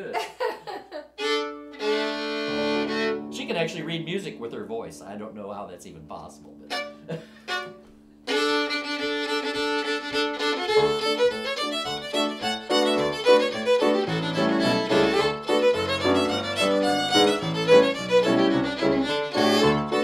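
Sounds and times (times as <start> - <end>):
fiddle tune: 1.0 - 20.0
digital piano chords and bass: 2.5 - 7.1, 8.9 - 20.0.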